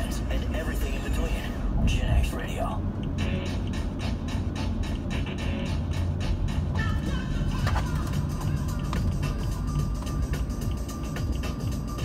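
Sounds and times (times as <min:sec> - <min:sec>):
music on car radio: 0:00.0 - 0:12.0
road rumble: 0:00.0 - 0:12.0.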